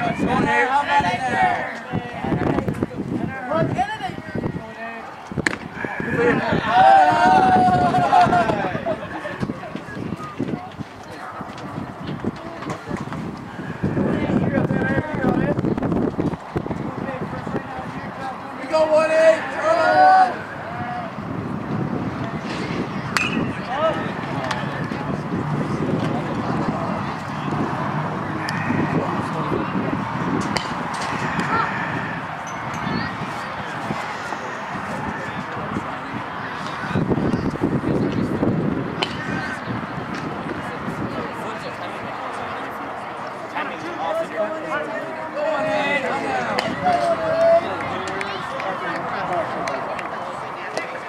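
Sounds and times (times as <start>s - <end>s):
low crowd chatter: 0.0s - 51.0s
metal bat hitting ball: 23.1s - 23.7s, 30.4s - 31.2s.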